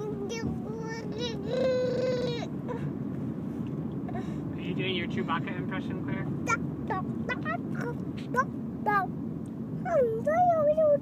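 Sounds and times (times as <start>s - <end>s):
toddler high-pitched vocal sound: 0.0s - 2.5s
road rumble inside moving car: 0.0s - 11.0s.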